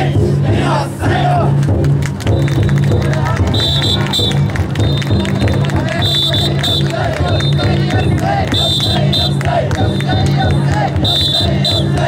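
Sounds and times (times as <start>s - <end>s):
people chanting and shouting: 0.0s - 12.0s
taiko drum beaten in rhythm: 0.0s - 12.0s.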